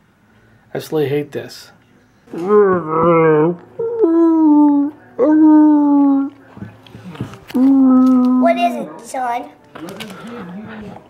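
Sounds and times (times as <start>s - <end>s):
person imitating dinosaur calls: 2.3s - 6.3s, 7.5s - 8.4s.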